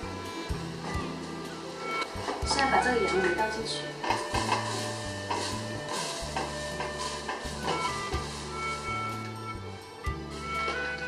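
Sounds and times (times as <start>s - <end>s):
background music: 0.0s - 11.0s
basket tapping on pot: 4.0s - 8.3s.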